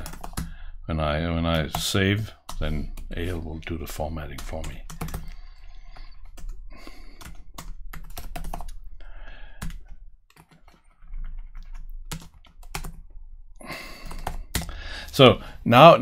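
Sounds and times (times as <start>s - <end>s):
typing on computer keyboard: 0.0s - 0.5s, 4.3s - 8.8s, 9.6s - 13.0s, 13.7s - 14.8s.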